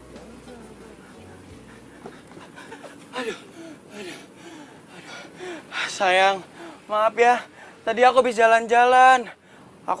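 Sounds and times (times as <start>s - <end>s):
man panting: 1.8s - 6.9s.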